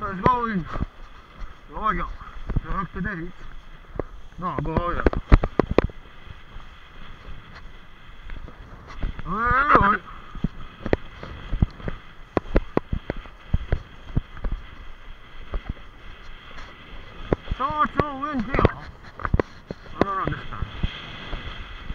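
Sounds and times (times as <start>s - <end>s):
sea water splashing against camera: 0.2s - 21.9s.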